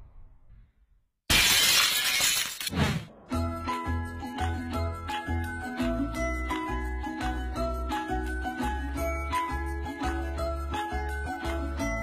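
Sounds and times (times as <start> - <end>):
glass breaking: 1.3 - 2.8.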